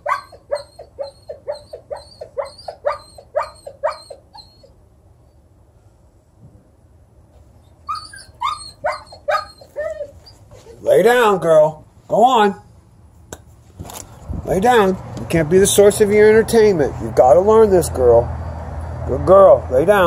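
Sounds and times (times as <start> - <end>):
dog yelping barks: 0.0 - 4.8, 7.8 - 10.9.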